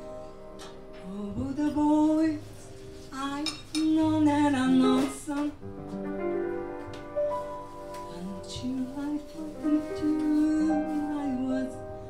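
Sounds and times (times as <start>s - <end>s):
woman singing: 0.0s - 5.6s, 8.1s - 12.0s.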